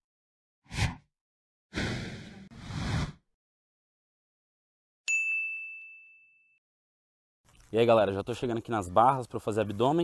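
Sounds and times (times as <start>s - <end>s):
bright bell-like ding: 5.1s - 6.6s.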